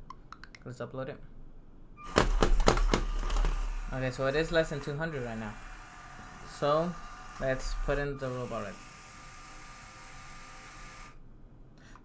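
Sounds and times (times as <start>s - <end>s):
electric motor whine: 2.0s - 11.2s.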